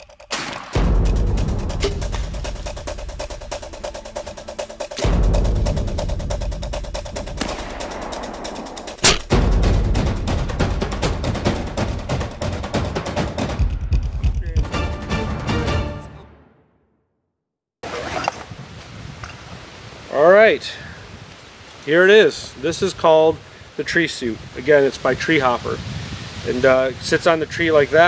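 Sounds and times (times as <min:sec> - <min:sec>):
sharp crack: 0:00.0 - 0:03.5, 0:04.9 - 0:10.5
driving montage music: 0:00.0 - 0:16.5
heavy booming hits: 0:07.3 - 0:14.8.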